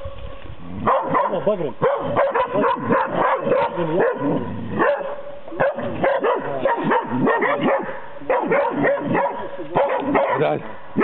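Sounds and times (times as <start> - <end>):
hounds barking rapidly: 0.8 - 11.0.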